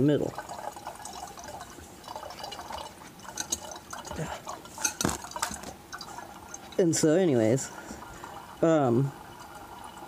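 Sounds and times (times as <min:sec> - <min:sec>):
liquid trickling into glass flask: 0:00.0 - 0:10.0.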